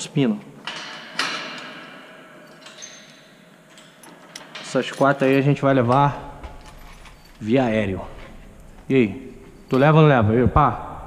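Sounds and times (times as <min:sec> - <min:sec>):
metal cage gate clanking: 0:00.6 - 0:10.2.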